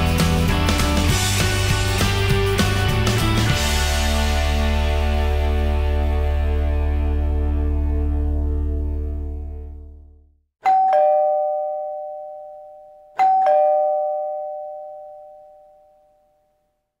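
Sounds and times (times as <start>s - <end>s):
outro music: 0.0s - 10.0s
two-note doorbell chime: 10.6s - 16.8s.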